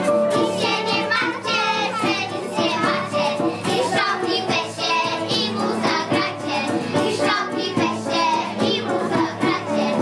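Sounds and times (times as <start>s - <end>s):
instrumental backing music: 0.0s - 10.0s
children singing: 0.2s - 10.0s.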